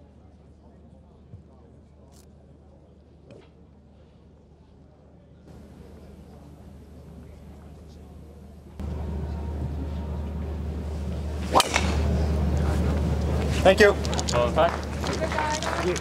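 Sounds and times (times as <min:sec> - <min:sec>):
outdoor background noise: 0:00.0 - 0:16.0.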